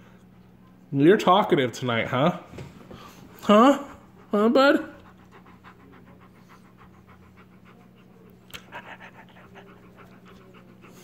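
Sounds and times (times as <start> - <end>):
dog panting: 3.0 - 11.0.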